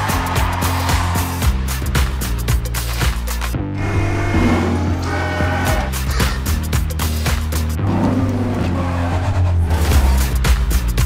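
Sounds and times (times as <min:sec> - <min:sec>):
music beat: 0:00.0 - 0:05.1, 0:05.7 - 0:07.8, 0:10.0 - 0:11.0.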